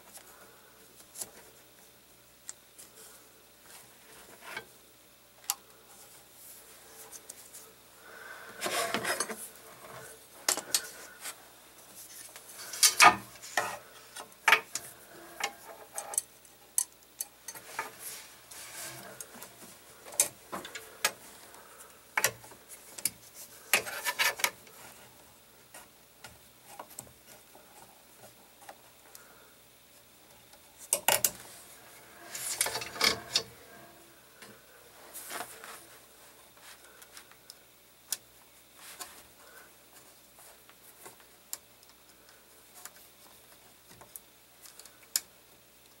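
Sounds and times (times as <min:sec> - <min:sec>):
metal scraping and rubbing: 0:17.6 - 0:19.4, 0:31.8 - 0:34.1.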